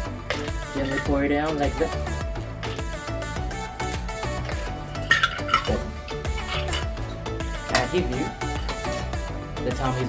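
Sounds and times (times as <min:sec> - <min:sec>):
background music with steady beat: 0:00.0 - 0:10.0
drink and ice pouring into glass: 0:04.4 - 0:07.0
ice clinking in a metal shaker: 0:05.0 - 0:07.0.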